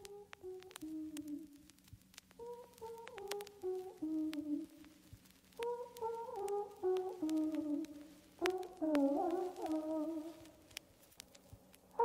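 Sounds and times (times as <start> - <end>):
faint slow tune: 0.0 - 12.0
sharp clicks: 0.0 - 12.0.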